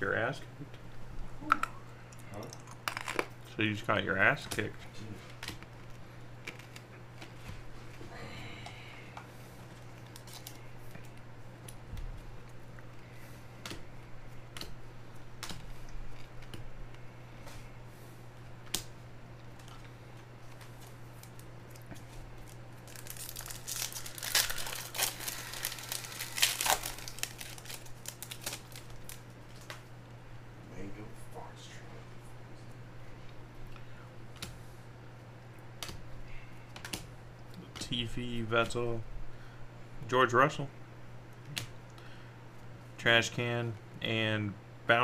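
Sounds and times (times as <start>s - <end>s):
foil wrapper tearing: 10.1s - 10.6s, 22.4s - 29.6s.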